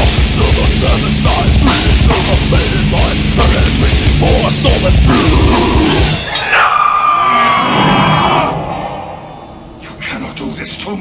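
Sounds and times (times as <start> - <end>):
heavy metal band playing: 0.0 - 10.0
screamed vocal: 5.1 - 9.5.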